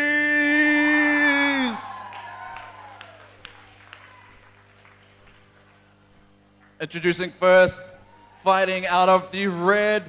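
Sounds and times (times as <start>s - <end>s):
echoing announcer call: 0.0s - 4.5s
single claps: 2.0s - 6.8s.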